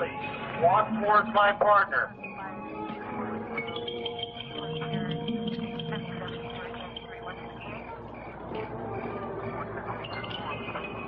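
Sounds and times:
film soundtrack hum and hiss: 0.0s - 11.0s.

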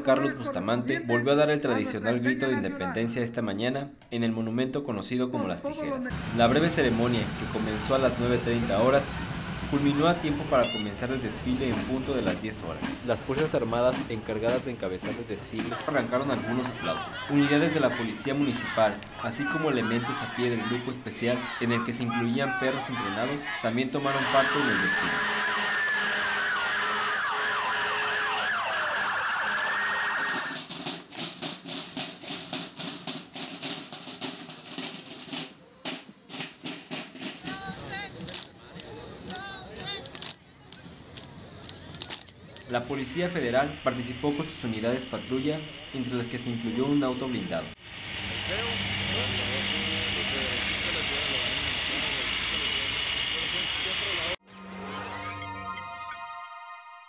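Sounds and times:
voices of onlookers: 5.9s - 30.6s, 48.4s - 54.4s
fire engine sirens wailing: 6.1s - 12.4s, 22.5s - 30.6s, 46.6s - 54.4s
steady hiss: 6.1s - 20.9s, 42.7s - 54.4s
snare drums march cadence: 6.1s - 38.5s.

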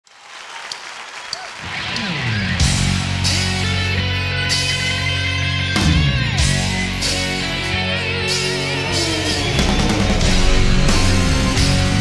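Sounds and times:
audience applauding: 0.0s - 2.7s
band low notes: 2.4s - 12.0s.

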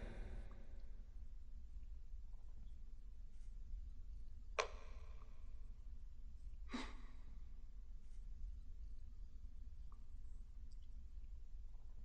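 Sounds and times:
low steady hum: 0.0s - 12.0s
faint breath: 6.7s - 7.4s.

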